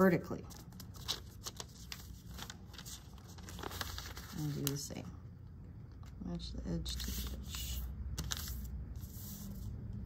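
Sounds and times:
paper rustling and crinkling: 0:00.5 - 0:05.0, 0:06.8 - 0:09.7.

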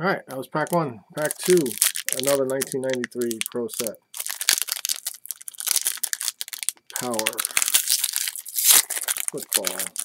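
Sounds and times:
foil wrapper crinkling and tearing: 0:00.6 - 0:10.0.

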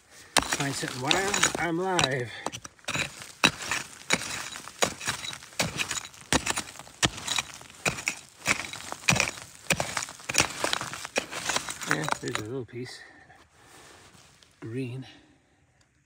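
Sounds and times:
stones and gravel clinking: 0:00.0 - 0:12.5
rock pick striking rubble: 0:00.2 - 0:12.5.

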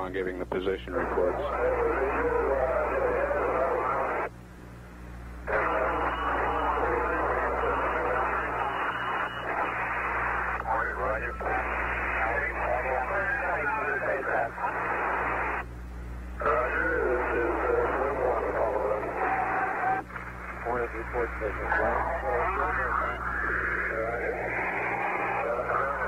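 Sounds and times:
faint garbled radio voices: 0:00.0 - 0:04.4, 0:05.2 - 0:26.0
low electrical hum: 0:00.0 - 0:26.0
radio static hiss: 0:00.0 - 0:26.0.

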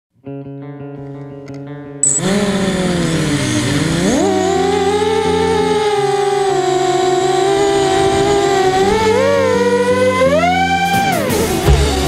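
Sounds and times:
music: 0:00.2 - 0:12.0
quadcopter motors whining: 0:02.0 - 0:12.0.

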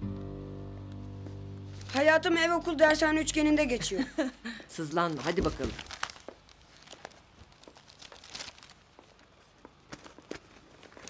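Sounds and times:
clothes and paper rustling: 0:01.7 - 0:03.3, 0:04.7 - 0:11.0.

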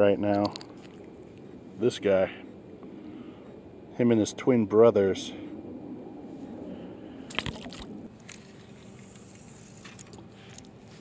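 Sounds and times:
fishing tackle clicks and rustles: 0:00.2 - 0:01.1, 0:07.3 - 0:11.0.

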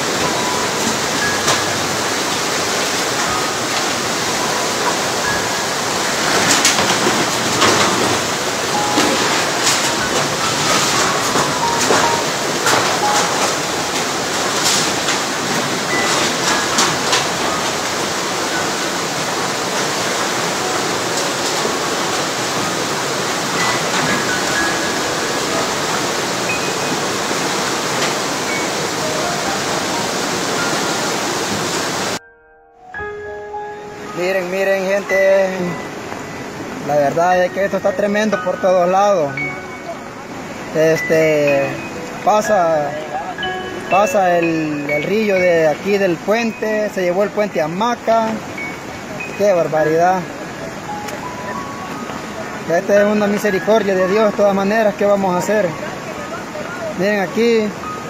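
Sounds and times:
floodwater rushing: 0:00.0 - 0:32.2, 0:33.2 - 0:58.0
knocks and bangs of debris: 0:06.2 - 0:17.9.

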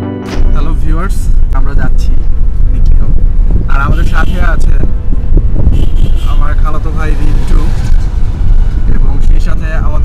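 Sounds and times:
car interior rumble: 0:00.6 - 0:10.0.

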